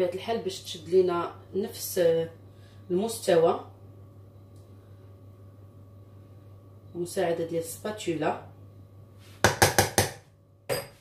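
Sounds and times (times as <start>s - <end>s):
spatula knocking on cookware: 9.4s - 11.0s.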